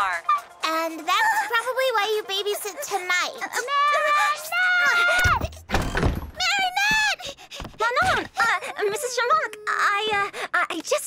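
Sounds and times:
wooden trapdoor thrown open: 5.2s - 6.6s.

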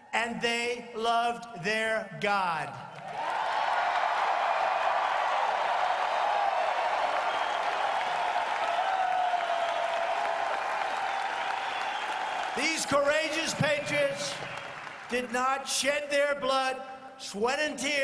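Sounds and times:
crowd applauding and cheering: 2.9s - 15.6s.

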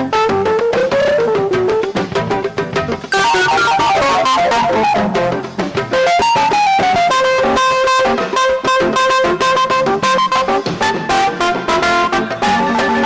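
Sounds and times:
jazz electric guitar: 0.0s - 13.0s.

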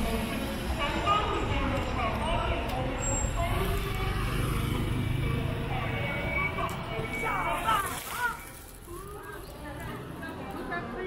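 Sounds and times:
rumble of passing vehicles: 0.0s - 11.0s.

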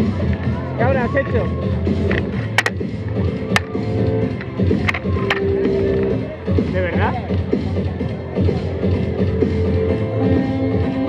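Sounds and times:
backing track with steady beat: 0.0s - 11.0s.

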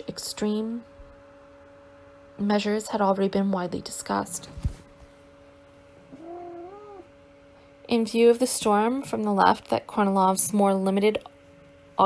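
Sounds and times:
low steady hum: 0.0s - 12.0s
faint wavering cry: 6.1s - 7.1s.

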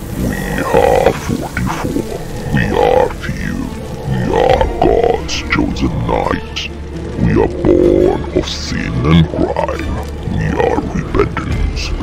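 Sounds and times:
low rumbling music: 0.0s - 12.0s
deep dramatic voice-over: 0.2s - 12.0s.

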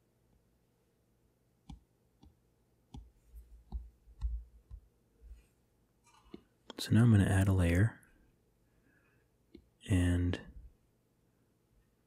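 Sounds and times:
stylus tapping on glass screen: 1.7s - 4.9s.

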